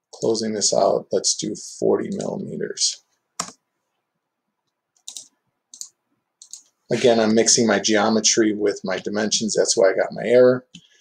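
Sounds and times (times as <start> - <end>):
keyboard and mouse clicks: 3.4 - 3.6, 4.6 - 6.8.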